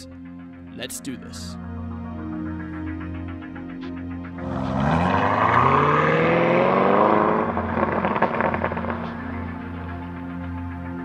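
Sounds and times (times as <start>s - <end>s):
background music: 0.0s - 11.0s
engine revving hard: 4.4s - 9.0s
exhaust crackling and popping: 7.3s - 9.3s.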